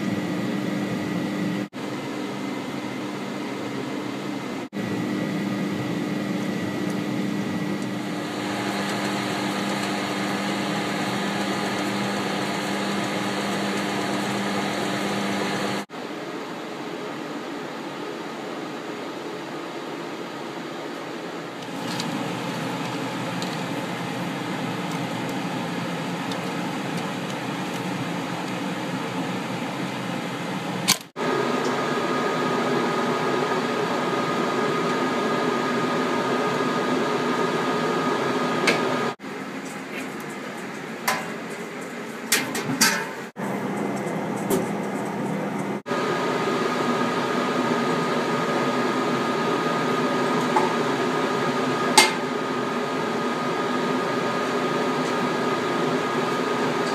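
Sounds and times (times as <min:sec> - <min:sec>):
machinery and fan hum: 0:00.0 - 0:56.9.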